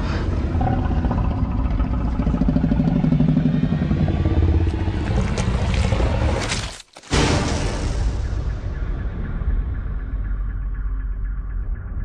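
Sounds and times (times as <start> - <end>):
dinosaur growl: 0.0 - 6.5
low rumble: 0.0 - 6.6, 7.5 - 12.0.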